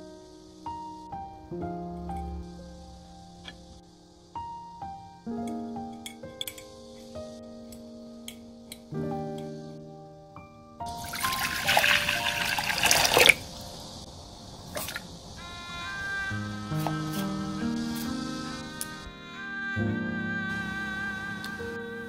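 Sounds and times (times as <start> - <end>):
soft background music: 0.0 - 14.0, 15.3 - 22.0
water pouring into a saucepan: 10.9 - 13.4.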